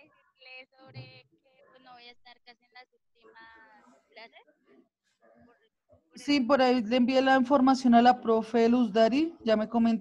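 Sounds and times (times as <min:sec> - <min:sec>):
choppy voice through video call: 0:00.0 - 0:10.0.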